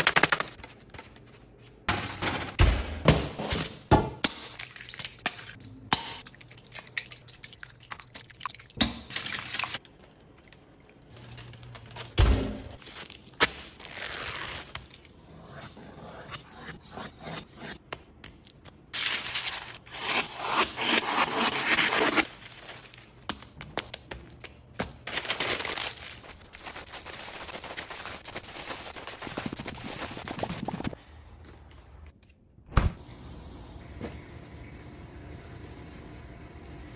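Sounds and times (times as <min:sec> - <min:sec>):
knife slicing through paper: 0:19.0 - 0:22.7.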